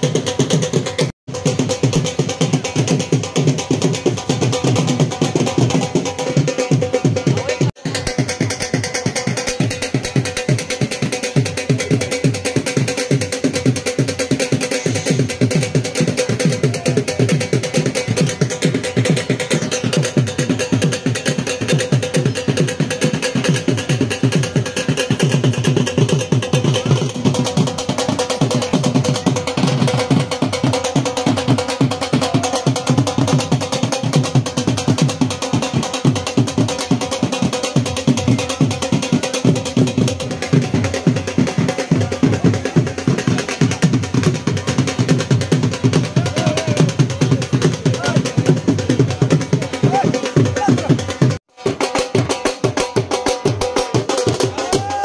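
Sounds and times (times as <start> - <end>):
drums beaten fast: 0.0 - 55.0.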